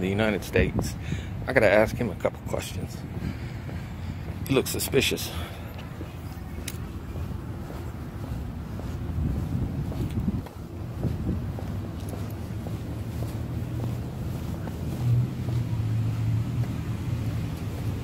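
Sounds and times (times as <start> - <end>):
vehicle engine humming: 0.0 - 18.0
wind buffeting microphone: 0.0 - 18.0.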